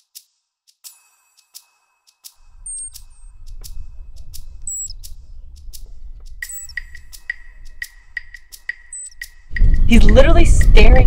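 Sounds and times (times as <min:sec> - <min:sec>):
low rumble: 0:02.4 - 0:08.2
ground squirrels chirping: 0:02.5 - 0:09.6
peeps: 0:02.6 - 0:03.3, 0:04.6 - 0:05.0, 0:06.4 - 0:07.0, 0:08.8 - 0:09.3.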